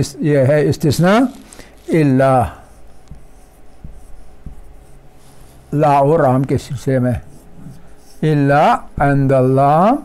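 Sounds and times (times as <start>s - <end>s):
man speaking: 0.0s - 2.7s, 5.7s - 7.3s, 8.2s - 10.0s
marker pen on whiteboard: 1.0s - 10.0s.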